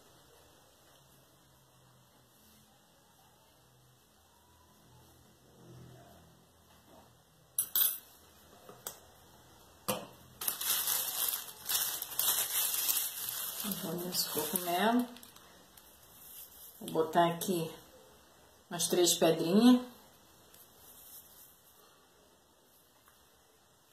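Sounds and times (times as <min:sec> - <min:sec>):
plastic bag crinkling: 0:10.4 - 0:16.9.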